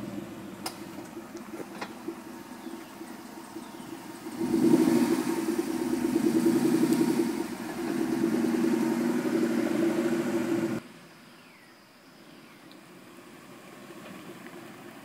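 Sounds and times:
car engine revving loud: 3.8s - 10.8s.

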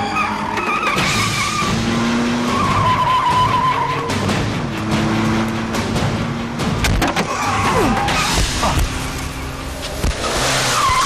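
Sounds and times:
tyre squeal: 0.0s - 1.8s, 2.4s - 4.2s, 7.2s - 11.0s.

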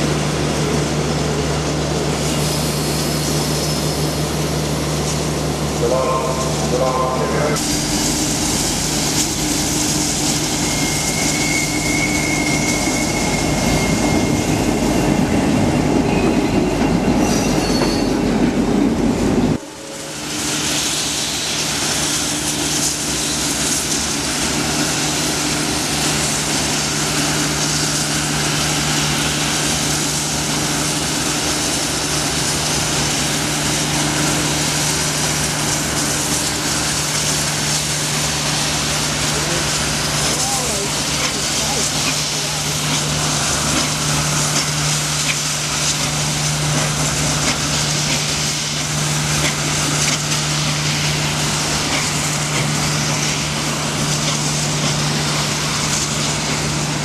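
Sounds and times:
train wheels on track: 0.0s - 57.0s.

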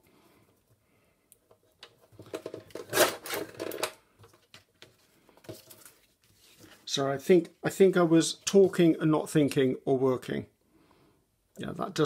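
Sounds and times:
paper sliding and rustling: 4.9s - 6.9s.

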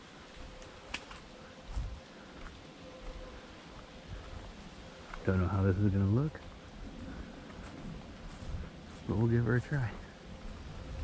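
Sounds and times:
footsteps on leaves: 0.0s - 11.0s.

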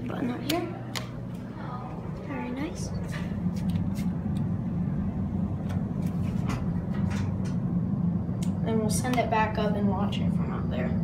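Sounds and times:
elevator low hum: 0.0s - 11.0s.

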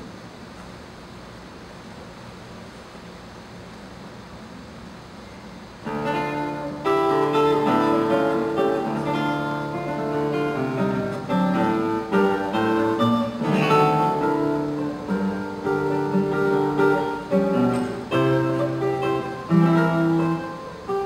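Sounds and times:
faint steady hiss: 0.0s - 21.0s
classical guitar playing: 5.8s - 21.0s.

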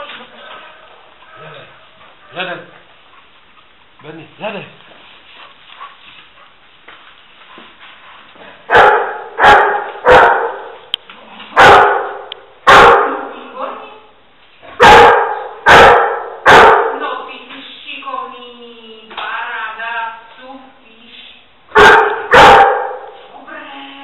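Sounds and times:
dog barking with echo: 8.7s - 10.8s, 11.6s - 13.3s, 14.8s - 17.0s, 21.7s - 23.2s.

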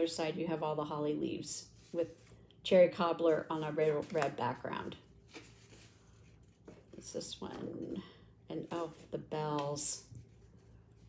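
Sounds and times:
paper rustling: 3.5s - 4.5s, 5.2s - 7.7s.

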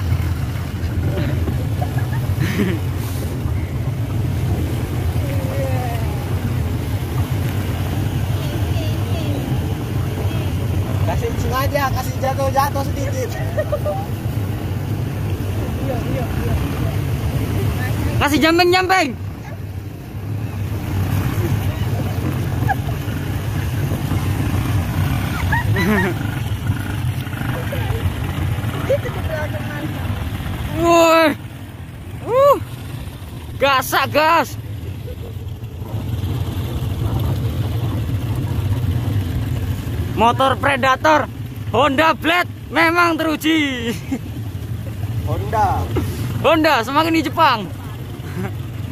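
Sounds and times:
motorcycle engine running: 0.0s - 48.9s
water splashing around wheels: 0.0s - 48.9s.

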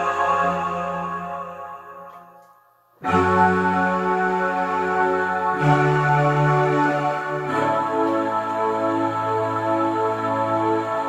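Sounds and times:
electronic keyboard chords: 0.0s - 11.0s.

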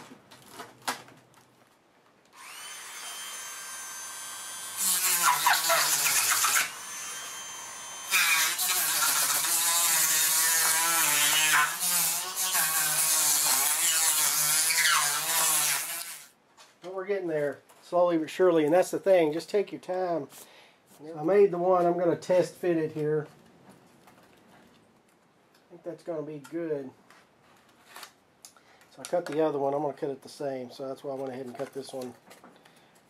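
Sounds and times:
rotary tool cutting foam: 2.4s - 16.3s.

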